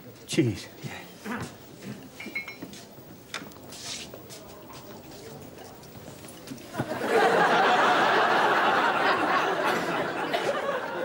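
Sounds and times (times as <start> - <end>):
light footsteps: 0.8 - 7.0
studio audience laughter: 6.7 - 11.0.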